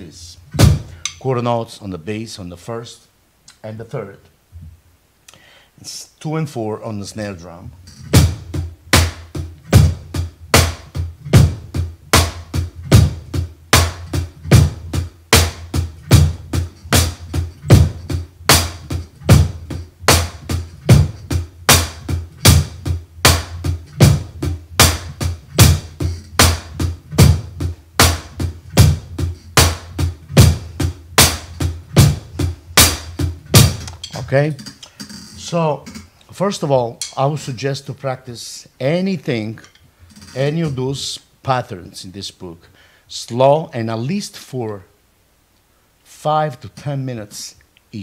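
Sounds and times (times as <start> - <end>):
drum kit playing rock groove: 0.0 - 1.3, 7.7 - 37.7, 39.3 - 41.2.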